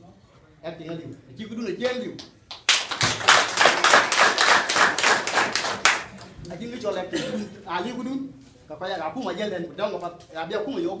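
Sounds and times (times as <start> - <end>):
crowd clapping in rhythm: 1.8 - 6.6.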